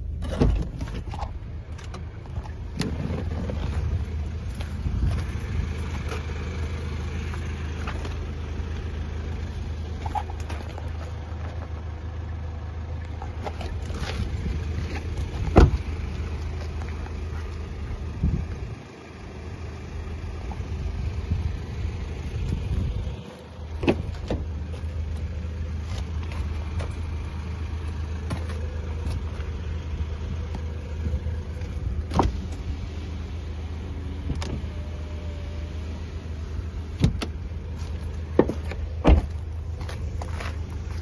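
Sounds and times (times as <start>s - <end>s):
wind rumbling on microphone: 2.2s - 6.1s, 13.6s - 16.2s, 17.8s - 18.8s, 20.5s - 24.6s
car doors clicking and knocking: 15.3s - 16.0s, 23.8s - 24.7s, 37.0s - 37.4s, 38.2s - 39.9s.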